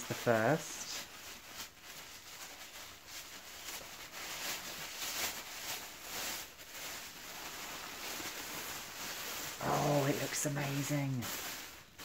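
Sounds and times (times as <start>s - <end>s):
tissue paper and plastic rustling: 0.0s - 12.0s.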